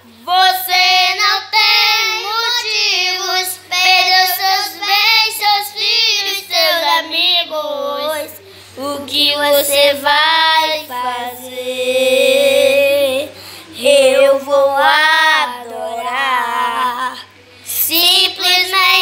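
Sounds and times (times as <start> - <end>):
children singing a gospel song: 0.0 - 19.0.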